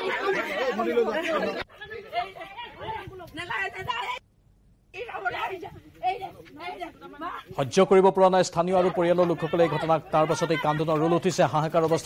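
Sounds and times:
people talking: 0:00.0 - 0:04.2, 0:05.0 - 0:12.0.

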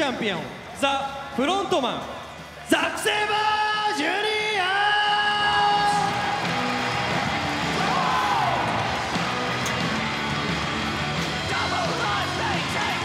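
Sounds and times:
arena crowd cheering: 0:00.0 - 0:13.0
entrance music: 0:05.2 - 0:13.0.

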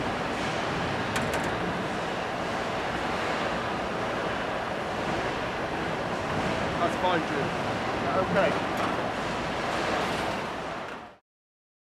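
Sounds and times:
production line machinery rumble: 0:00.0 - 0:11.1.

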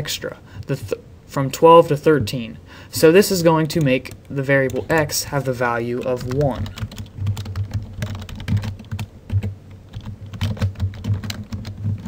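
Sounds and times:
keyboard typing: 0:03.7 - 0:05.2, 0:05.9 - 0:12.0.

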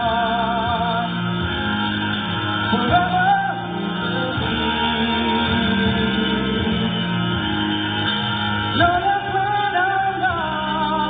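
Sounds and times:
guitar accompaniment: 0:00.0 - 0:11.0
person singing: 0:00.0 - 0:11.0.

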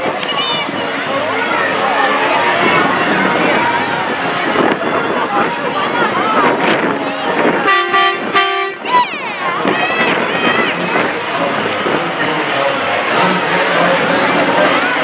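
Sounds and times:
crowd chatter: 0:00.0 - 0:15.0
people shouting: 0:00.0 - 0:15.0
truck horn blasts: 0:06.8 - 0:08.9.

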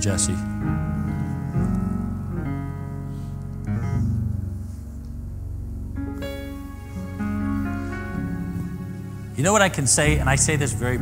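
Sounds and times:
slow keyboard music: 0:00.0 - 0:11.0.

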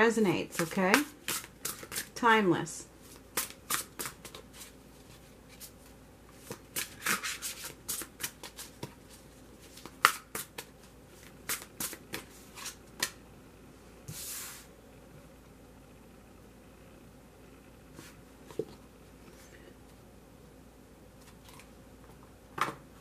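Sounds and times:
cards being shuffled: 0:06.4 - 0:13.1.

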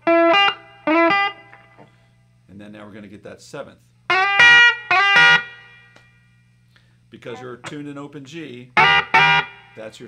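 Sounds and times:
electric guitar notes: 0:00.0 - 0:01.8
amplifier hum: 0:00.0 - 0:10.0.

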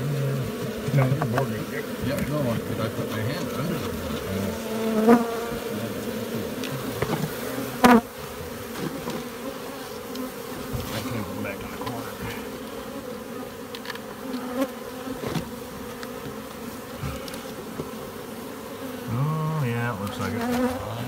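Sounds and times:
bees buzzing: 0:00.0 - 0:21.0.

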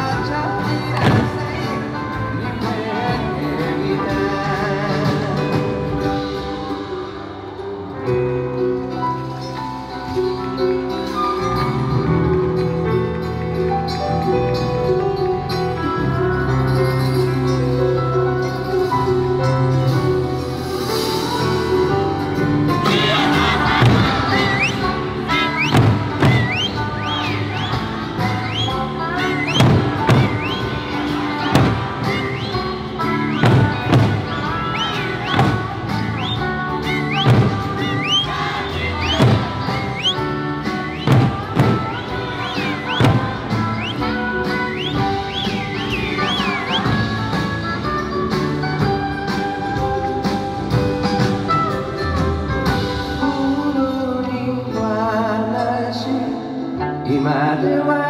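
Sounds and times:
big drum strikes: 0:33.3 - 0:40.1.

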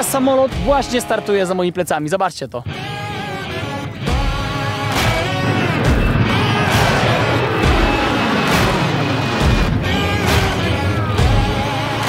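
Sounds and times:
jet airliner engine roar: 0:03.5 - 0:12.0.

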